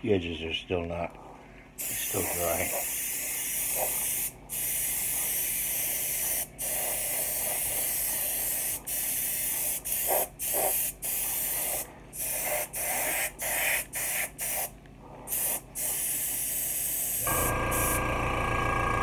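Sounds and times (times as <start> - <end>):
airbrush hissing: 1.8 - 14.7, 15.3 - 18.0.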